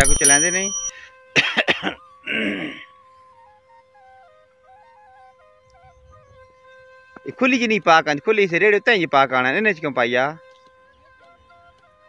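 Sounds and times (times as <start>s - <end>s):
person coughing: 1.4s - 2.8s.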